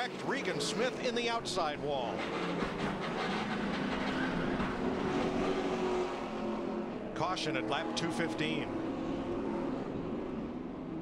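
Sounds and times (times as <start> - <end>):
race car engine drone: 0.0 - 11.0
rattling rumbling car noise: 0.6 - 5.9.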